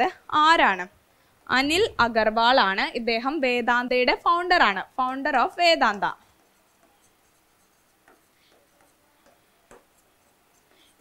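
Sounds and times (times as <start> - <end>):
pen writing on a board: 6.2 - 11.0.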